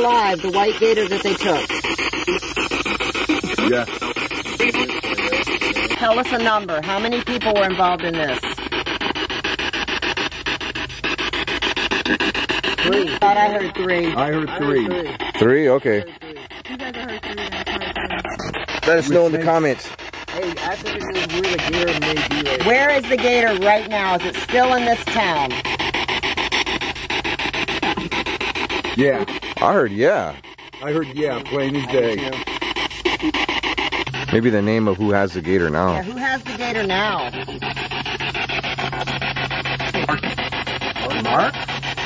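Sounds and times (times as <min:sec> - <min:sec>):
choppy static: 0:00.0 - 0:42.0
radio scanner sweeping stations: 0:00.0 - 0:42.0.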